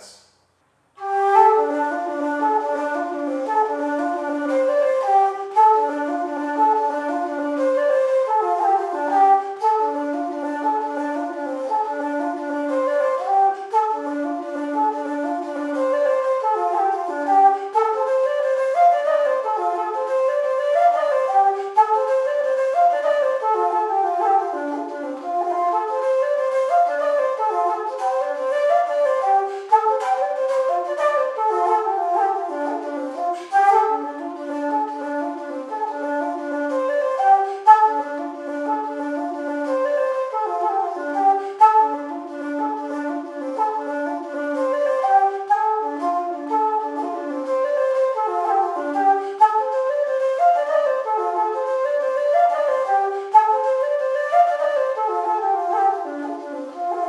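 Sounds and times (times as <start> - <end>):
wooden flute playing a jig: 0.0 - 0.3, 0.9 - 57.0.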